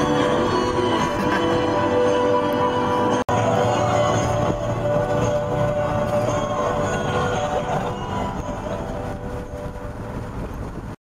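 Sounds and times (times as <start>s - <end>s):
car road and wind noise: 0.0s - 11.0s.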